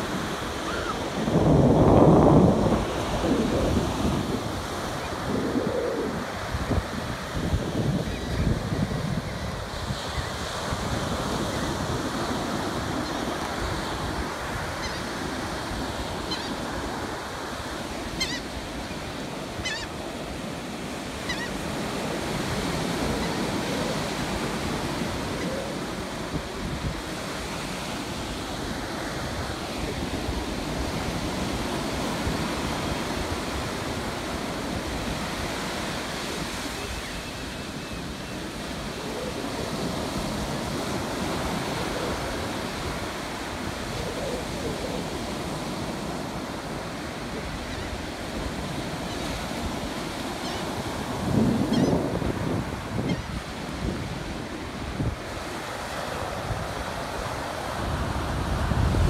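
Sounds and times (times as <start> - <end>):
ocean surf on beach: 0.0 - 59.0.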